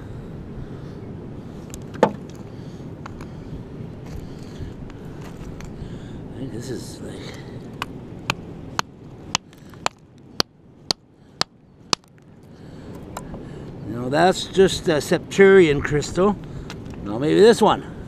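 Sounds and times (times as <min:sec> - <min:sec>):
hammer cracking rock: 0:08.3 - 0:12.2.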